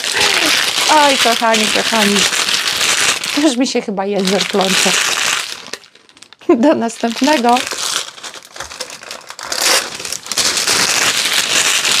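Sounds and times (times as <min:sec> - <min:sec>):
plastic bag crinkling: 0:00.0 - 0:12.0.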